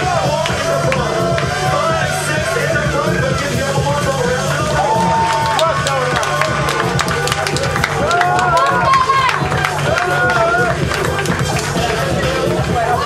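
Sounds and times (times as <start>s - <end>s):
crowd clapping: 0.0s - 2.6s, 4.8s - 13.0s
dance music beat: 0.0s - 13.0s.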